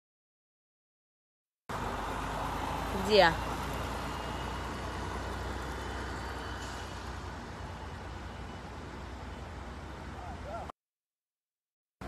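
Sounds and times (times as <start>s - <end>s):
distant road traffic rumble: 1.7s - 10.7s.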